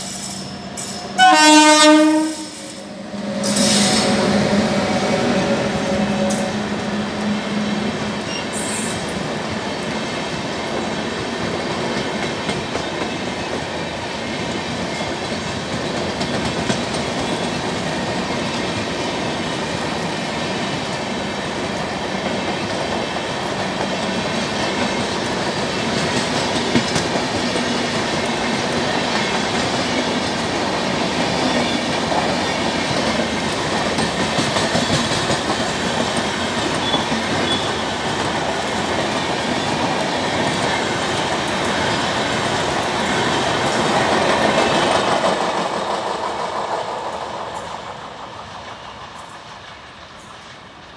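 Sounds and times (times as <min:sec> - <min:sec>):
train wheels rumbling on rails: 0:00.0 - 0:50.9
clickety-clack clatter: 0:10.8 - 0:20.1, 0:20.7 - 0:50.9.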